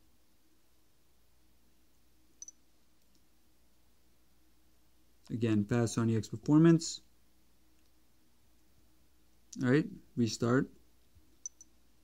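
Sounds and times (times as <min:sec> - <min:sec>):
fingers tapping smartphone: 0:11.4 - 0:11.8.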